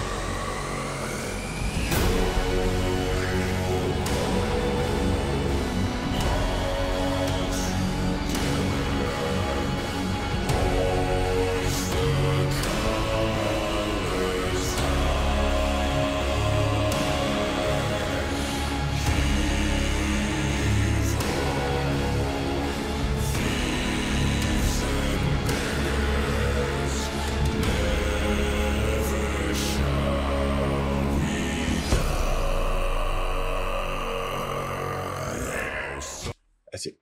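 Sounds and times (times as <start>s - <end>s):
deep bass voices singing: 0.0s - 36.4s.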